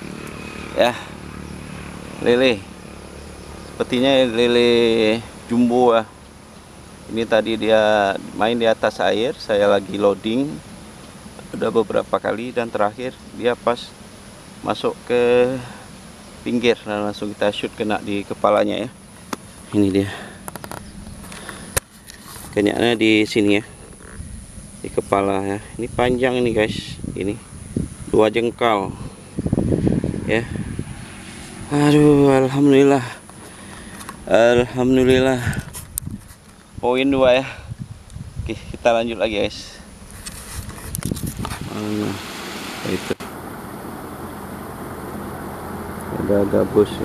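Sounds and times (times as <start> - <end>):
low rumble with faint hiss: 0.0 - 47.0.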